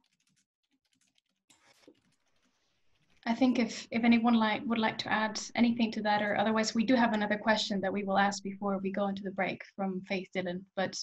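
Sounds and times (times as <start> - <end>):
faint keyboard typing clicks: 0.0 - 3.3.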